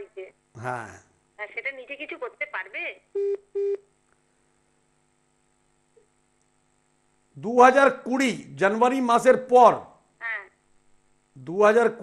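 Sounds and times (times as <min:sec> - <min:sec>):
low steady hum: 0:00.0 - 0:12.0
short beeps: 0:03.2 - 0:03.9.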